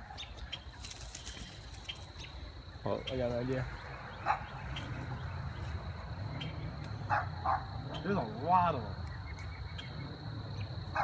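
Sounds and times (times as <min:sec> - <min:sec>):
dog barking: 0:04.2 - 0:04.5, 0:07.1 - 0:08.0.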